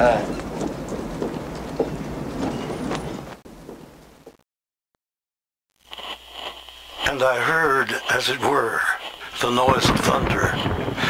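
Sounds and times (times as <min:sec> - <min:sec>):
wind rumbling and gusting: 0:00.0 - 0:04.2, 0:07.8 - 0:11.0.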